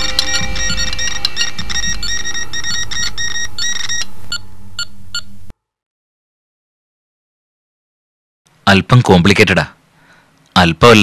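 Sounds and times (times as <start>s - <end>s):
rapid electronic beeping: 0.0s - 5.3s.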